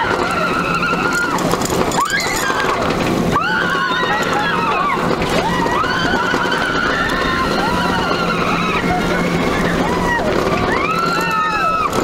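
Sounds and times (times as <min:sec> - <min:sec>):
riders screaming: 0:00.0 - 0:12.0
roller coaster rumble: 0:00.0 - 0:12.0.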